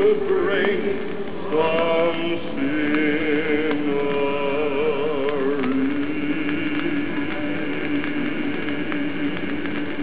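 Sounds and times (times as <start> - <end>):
vinyl surface hiss and crackles: 0.0 - 10.0.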